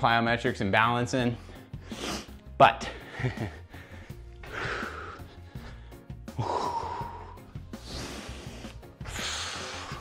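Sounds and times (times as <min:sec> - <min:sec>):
background music: 0:00.0 - 0:10.0
man's forceful breath out: 0:03.0 - 0:10.0.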